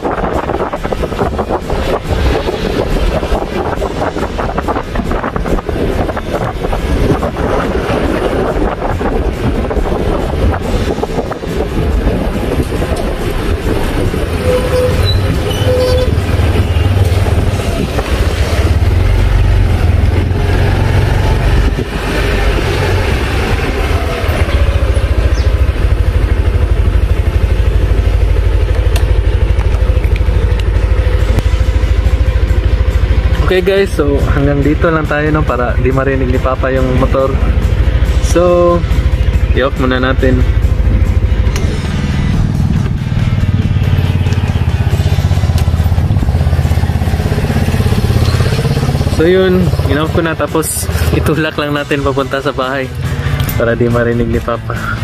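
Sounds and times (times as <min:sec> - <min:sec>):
wind and road noise: 0:00.0 - 0:55.0
scooter engine running: 0:09.2 - 0:34.6, 0:37.4 - 0:51.2.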